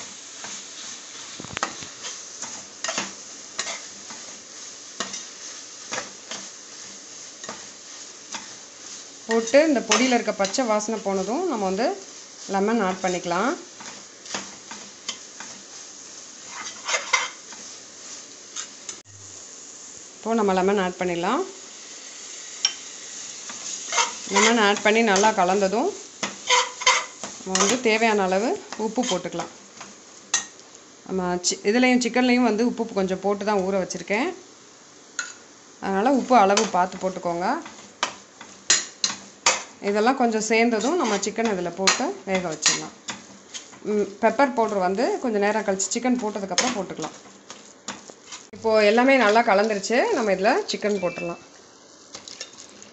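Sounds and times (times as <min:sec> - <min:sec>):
masala sizzling in a pot: 0:00.0 - 0:52.9.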